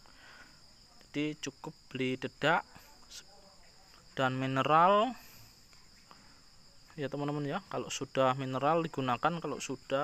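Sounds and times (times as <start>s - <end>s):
crickets trilling: 0.0s - 10.0s
man speaking: 0.9s - 5.4s, 7.0s - 10.0s.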